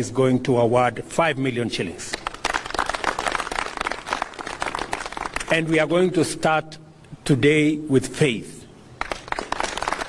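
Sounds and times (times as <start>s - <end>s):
crowd applauding: 2.2s - 5.6s, 9.0s - 10.0s.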